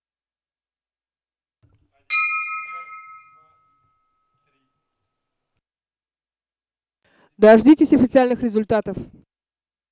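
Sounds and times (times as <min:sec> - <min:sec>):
finish bell ringing: 0:02.1 - 0:04.9.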